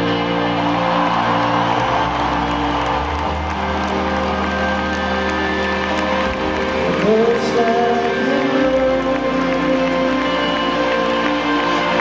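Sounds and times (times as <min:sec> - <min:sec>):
crowd cheering: 0:00.0 - 0:12.0
held keyboard chords: 0:00.0 - 0:12.0.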